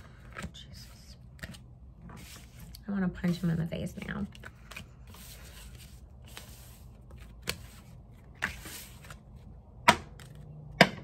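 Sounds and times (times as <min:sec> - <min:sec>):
cards rustling while shuffled: 0:00.0 - 0:10.6.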